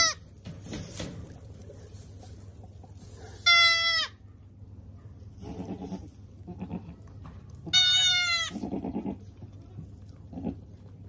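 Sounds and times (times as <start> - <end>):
goat kid bleating: 0.0 - 0.2, 3.4 - 4.3, 5.4 - 10.8
quiet rustling: 0.2 - 3.4.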